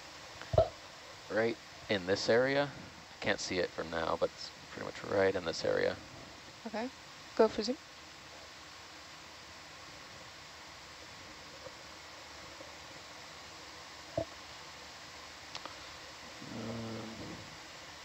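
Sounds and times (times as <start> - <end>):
steady low hiss: 0.0 - 18.0
faint clicks: 15.5 - 15.8
person murmuring: 16.4 - 17.5.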